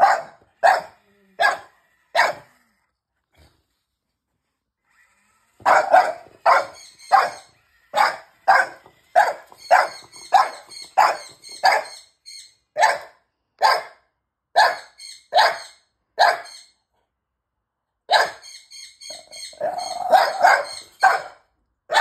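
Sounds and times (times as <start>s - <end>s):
dog barking: 0.0s - 2.6s, 5.6s - 12.0s, 12.8s - 14.0s, 14.6s - 16.6s, 18.1s - 18.4s, 19.6s - 22.0s.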